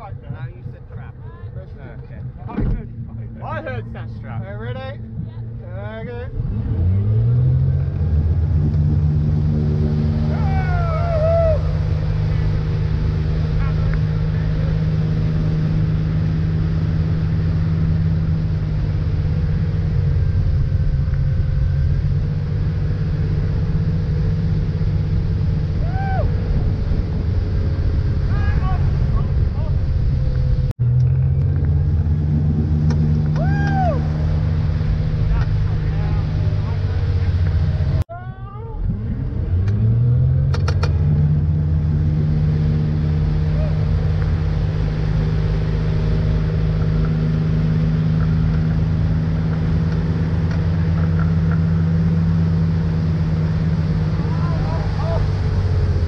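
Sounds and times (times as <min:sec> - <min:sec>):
boat engine revving: 0:00.0 - 0:56.0
rushing wake water: 0:06.3 - 0:38.1, 0:39.5 - 0:56.0.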